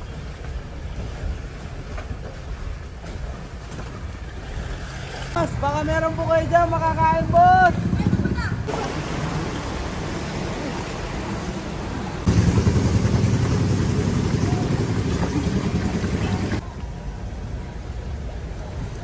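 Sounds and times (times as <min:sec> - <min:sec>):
water rushing and sloshing: 0:00.0 - 0:19.0
vehicle engine running: 0:07.1 - 0:16.6.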